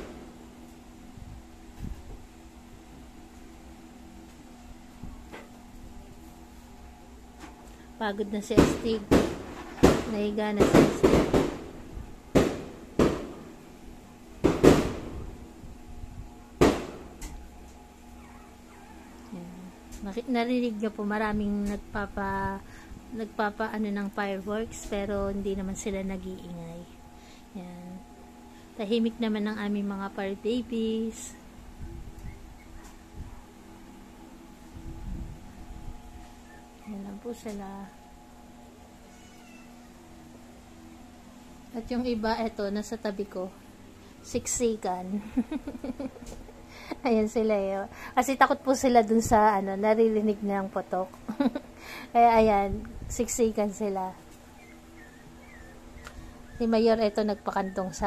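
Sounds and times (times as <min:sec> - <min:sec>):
low hum: 0:00.0 - 0:58.0
distant fireworks bangs: 0:08.5 - 0:13.5, 0:14.4 - 0:15.2
puppy whimpering: 0:18.1 - 0:19.7, 0:32.2 - 0:33.1, 0:36.3 - 0:37.0, 0:39.0 - 0:40.0, 0:54.4 - 0:58.0.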